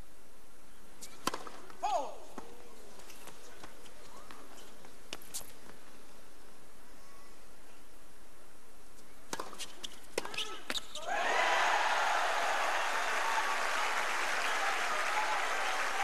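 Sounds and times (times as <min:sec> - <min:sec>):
tennis ball strikes and bounces: 0:01.2 - 0:01.7, 0:09.3 - 0:10.8
crowd cheering and applause: 0:11.1 - 0:16.0.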